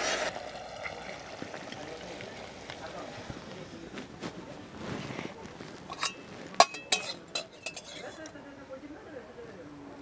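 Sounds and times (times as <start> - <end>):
spoon clinking on ceramic plate: 5.9 - 8.2.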